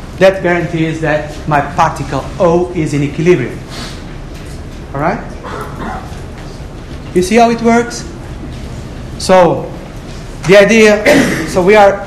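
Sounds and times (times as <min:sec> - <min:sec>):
steady background noise: 0:00.0 - 0:12.0
man speaking: 0:00.2 - 0:03.7, 0:04.9 - 0:05.4, 0:07.1 - 0:08.2, 0:09.2 - 0:09.8.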